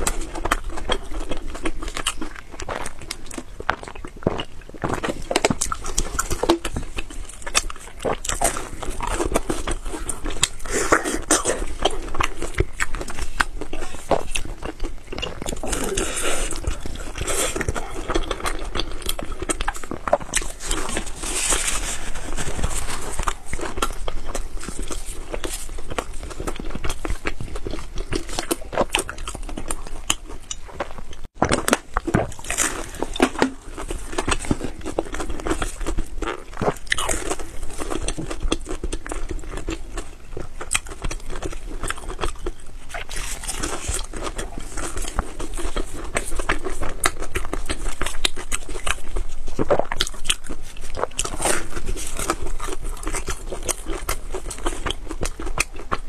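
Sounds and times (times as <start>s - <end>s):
person chewing soft bread: 0.0s - 56.0s.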